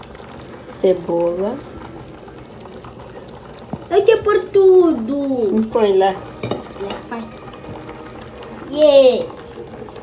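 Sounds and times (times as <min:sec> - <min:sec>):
faint pot and spoon sounds: 0:02.7 - 0:10.0
utensil knocking on metal pot: 0:06.4 - 0:07.1.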